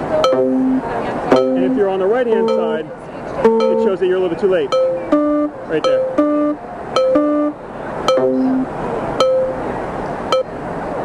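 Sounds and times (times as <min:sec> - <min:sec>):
low held tone: 0:00.0 - 0:04.0, 0:04.6 - 0:09.7, 0:10.3 - 0:10.6
electronic metronome chimes: 0:00.2 - 0:02.8, 0:03.4 - 0:04.0, 0:04.7 - 0:09.6, 0:10.3 - 0:10.5.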